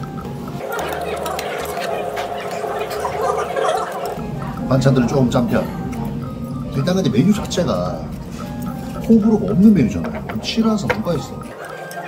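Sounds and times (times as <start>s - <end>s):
murmur of voices: 0.5s - 12.0s.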